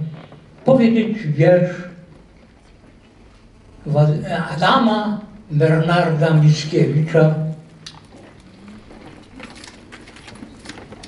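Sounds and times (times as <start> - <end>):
low room hum: 0.0 - 11.0
faint clicks and rustles: 2.0 - 3.8, 7.7 - 11.0.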